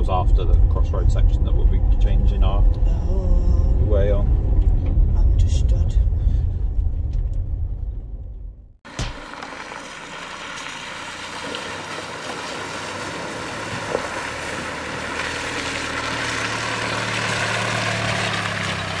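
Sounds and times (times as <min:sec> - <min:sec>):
car engine hum: 0:00.0 - 0:19.0.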